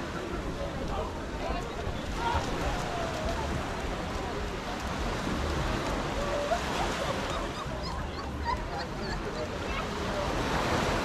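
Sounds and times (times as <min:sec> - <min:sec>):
water noise: 0:00.0 - 0:11.0
wind: 0:00.0 - 0:11.0.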